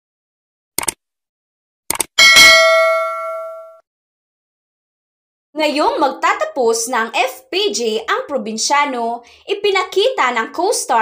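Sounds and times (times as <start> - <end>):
bell ding: 2.2 - 3.8.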